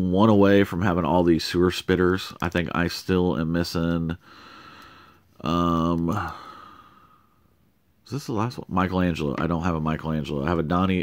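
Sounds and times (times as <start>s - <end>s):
breathy sigh: 4.2s - 5.3s, 6.1s - 7.4s
man saying um: 5.4s - 6.4s.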